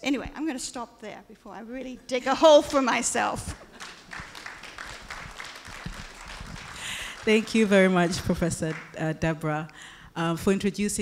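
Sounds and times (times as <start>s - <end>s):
audience applauding: 3.6s - 9.0s.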